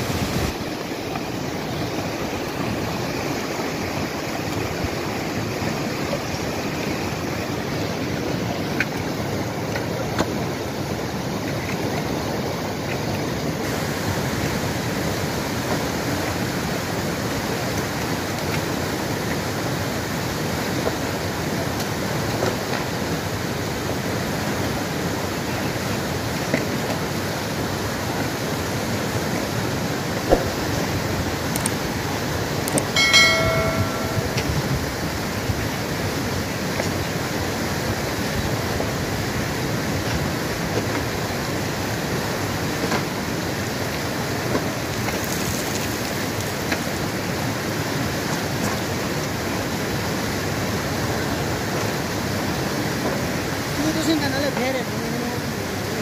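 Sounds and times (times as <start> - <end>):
river rushing over rocks: 0.0 - 56.0
single click: 30.3 - 30.8
brief high-pitched tone: 33.0 - 34.9.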